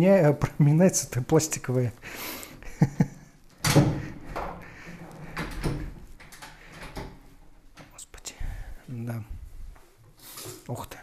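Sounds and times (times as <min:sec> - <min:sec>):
cabinet front banging: 0:03.6 - 0:06.0.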